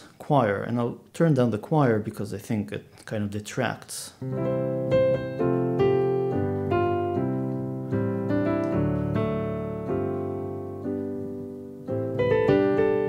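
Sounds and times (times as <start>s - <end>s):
digital piano chords with choir pad: 4.2s - 13.0s.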